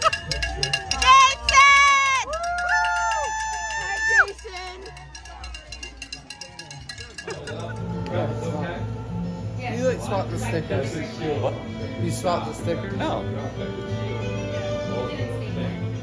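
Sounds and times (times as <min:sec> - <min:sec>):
spectators cheering and whooping: 0:00.0 - 0:05.2.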